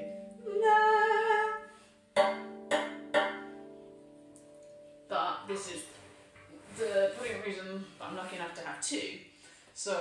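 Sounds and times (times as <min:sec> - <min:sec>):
steel tongue drum notes ringing: 0:02.2 - 0:05.8.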